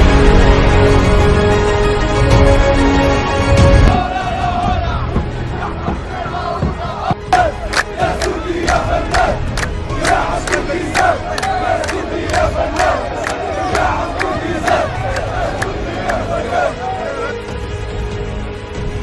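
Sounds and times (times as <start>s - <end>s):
crowd chanting in unison: 3.8s - 17.6s
sharp rhythmic hits: 5.7s - 16.8s.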